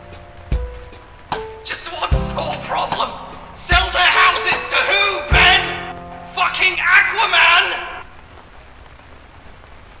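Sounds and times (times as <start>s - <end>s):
soft steady rain: 0.0s - 10.0s.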